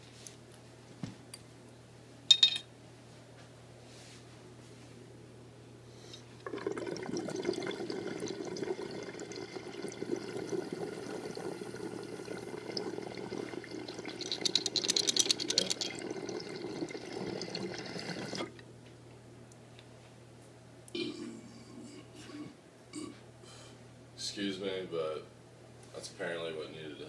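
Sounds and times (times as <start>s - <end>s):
water bubbling through glass pipe: 6.4s - 18.5s.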